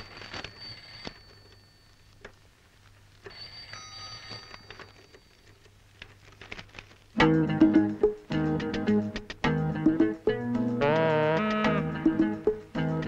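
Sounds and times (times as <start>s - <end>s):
paper pages turning: 0.0s - 1.4s, 4.2s - 7.2s
faint high ringing tone: 0.0s - 2.5s, 3.2s - 5.7s.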